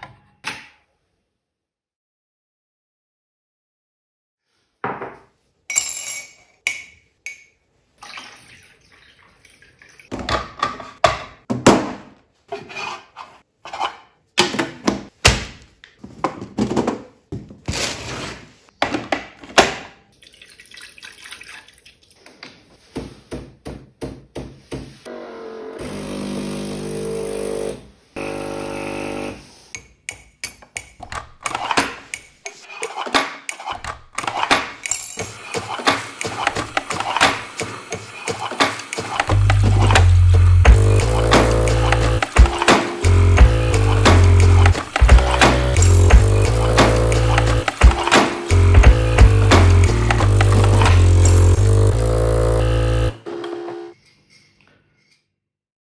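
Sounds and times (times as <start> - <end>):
lo-fi boom-bap beat: 39.0 - 51.1
heavy bass line and drums: 39.3 - 53.1
pitched sample stabs: 39.3 - 53.2.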